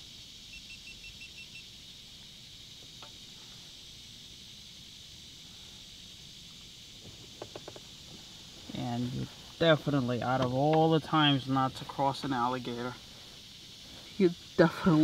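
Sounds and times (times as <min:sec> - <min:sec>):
high-pitched insect drone: 0:00.0 - 0:15.0.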